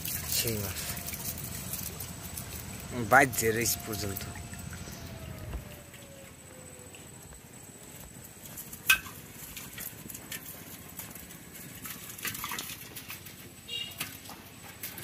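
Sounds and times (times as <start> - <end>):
water dripping: 0.0 - 14.3.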